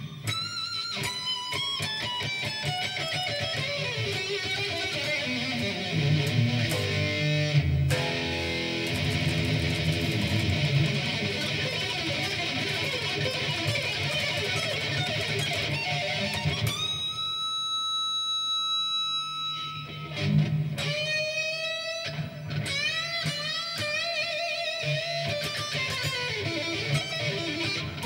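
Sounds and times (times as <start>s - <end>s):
electric guitar solo: 0.0s - 28.0s.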